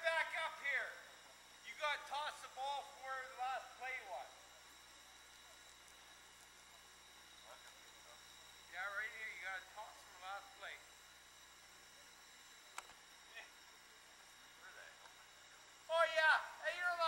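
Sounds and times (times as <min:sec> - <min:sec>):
steady low hiss: 0:00.0 - 0:17.0.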